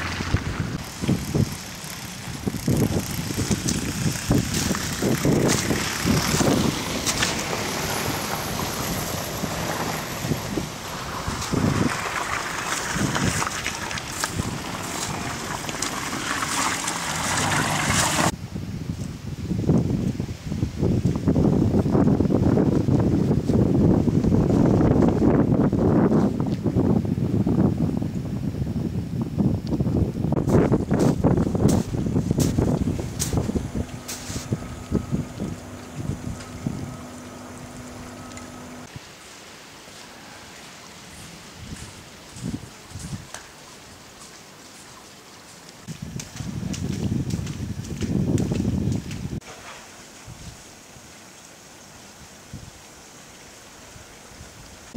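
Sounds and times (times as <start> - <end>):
wind buffeting microphone: 0.0 - 39.0, 41.1 - 44.1, 45.8 - 49.4.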